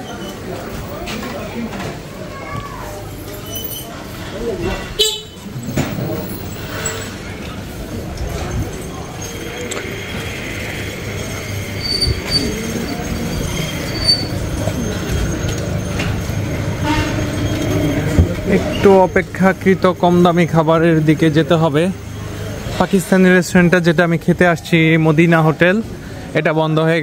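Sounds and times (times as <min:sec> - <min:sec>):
street traffic: 0:00.0 - 0:27.0
street voices: 0:00.0 - 0:27.0
vehicle horn toot: 0:04.6 - 0:05.5, 0:16.8 - 0:17.4.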